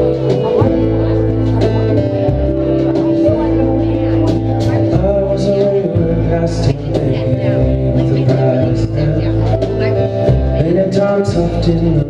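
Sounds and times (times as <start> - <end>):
live folk-rock band playing: 0.0 - 12.0
man singing: 0.0 - 12.0.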